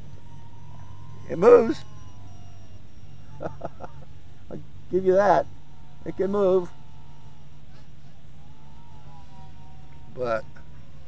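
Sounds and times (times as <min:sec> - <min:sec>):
quadcopter motor whine: 0:00.0 - 0:11.0
steady low hum: 0:00.0 - 0:11.0.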